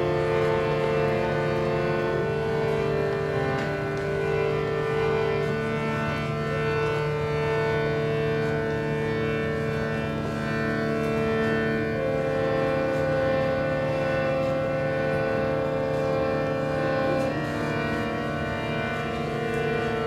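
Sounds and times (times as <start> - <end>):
harmonium drone: 0.0 - 20.0.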